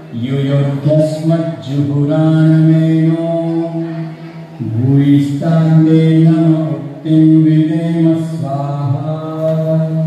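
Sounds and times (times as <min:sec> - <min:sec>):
mantra chanted in long held notes: 0:00.1 - 0:10.0.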